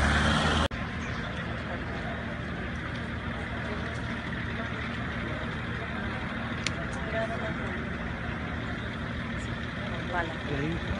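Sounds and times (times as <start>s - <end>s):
traffic noise: 0.0s - 10.9s
people talking: 1.2s - 10.9s.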